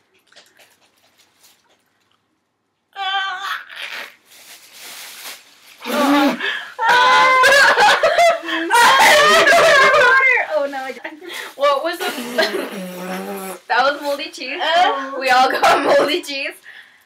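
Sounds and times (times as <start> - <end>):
girl squealing: 3.0 - 4.2, 5.8 - 10.4
plastic bags crinkling: 4.0 - 8.3, 9.1 - 11.7
girls laughing and shrieking: 6.8 - 10.5.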